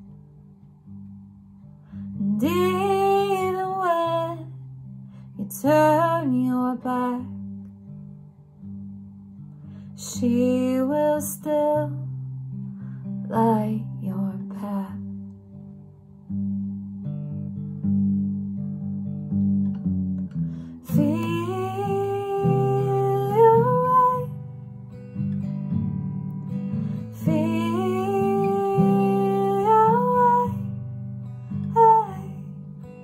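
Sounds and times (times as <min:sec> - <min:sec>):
acoustic guitar playing: 0:00.0 - 0:33.0
woman's wordless singing: 0:02.2 - 0:04.5, 0:05.4 - 0:07.4, 0:10.0 - 0:12.0, 0:13.3 - 0:15.0, 0:20.8 - 0:24.4, 0:27.0 - 0:30.7, 0:31.7 - 0:32.4.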